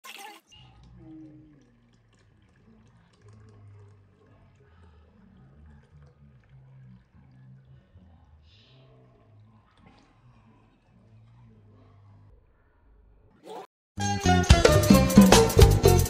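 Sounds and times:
liquid pouring into a glass: 0.7 - 7.8.

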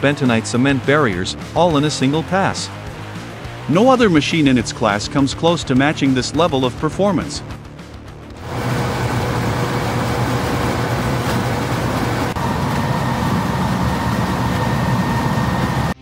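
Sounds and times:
chain trencher cutting: 8.4 - 13.2.

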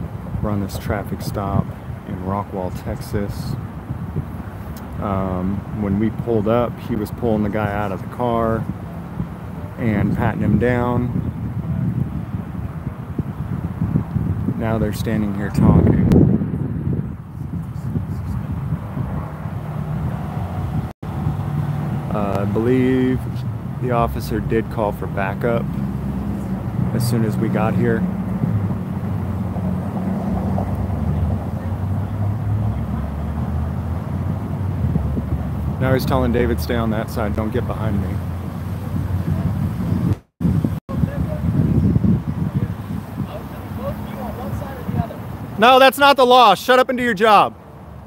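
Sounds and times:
wind buffeting microphone: 0.0 - 46.1
traffic hum: 0.0 - 48.0
vehicle idling: 20.7 - 40.2
distant voices talking: 42.4 - 47.5.

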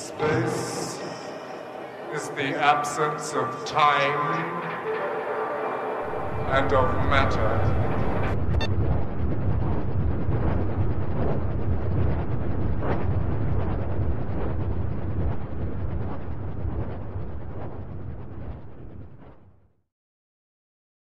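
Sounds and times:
low synthesizer drone: 0.0 - 18.8.

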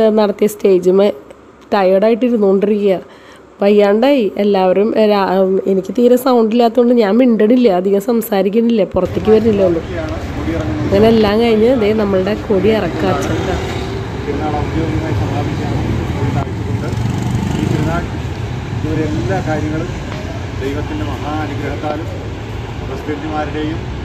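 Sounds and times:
road traffic rumble: 7.4 - 24.0.

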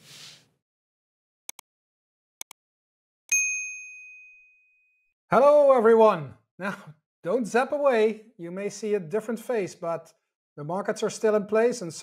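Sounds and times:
bright bell ding: 3.3 - 4.8.

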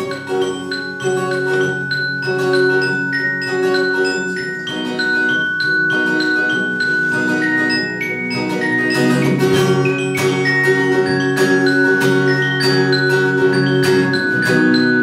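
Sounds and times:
acoustic guitar chords: 0.0 - 15.0
high chiming melody notes: 0.0 - 15.0
keyboard chords: 0.0 - 15.0.

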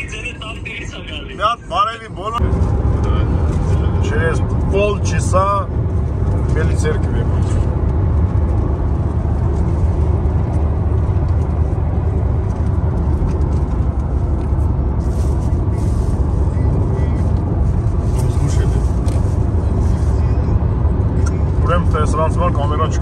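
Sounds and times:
tyre and engine rumble in car: 0.0 - 23.0.

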